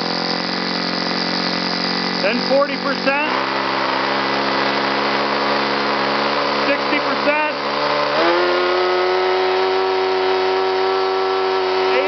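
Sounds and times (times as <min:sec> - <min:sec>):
model engine turning propeller: 0:00.0 - 0:12.0.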